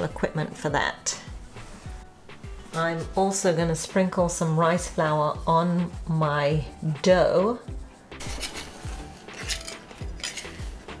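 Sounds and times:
background music with steady beat: 0.0 - 11.0
metal scraper scraping on stone worktop: 8.2 - 11.0.

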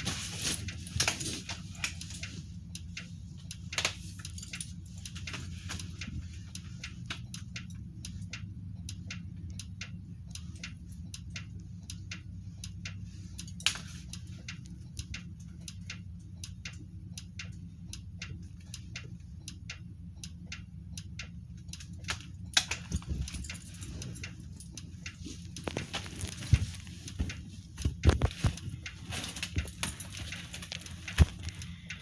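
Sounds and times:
light irregular clicks: 0.4 - 32.0.

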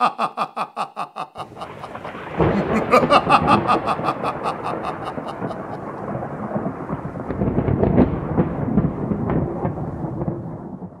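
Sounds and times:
rolling thunder with crackles: 1.5 - 11.0.

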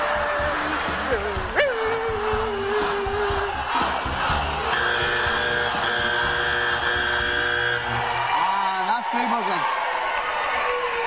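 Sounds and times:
audience noise: 0.0 - 11.0
sustained chord: 4.7 - 8.1.

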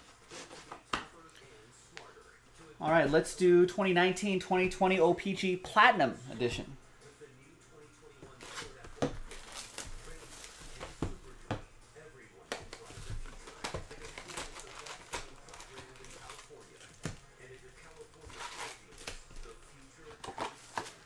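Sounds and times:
foil packs crinkling: 12.8 - 21.0.

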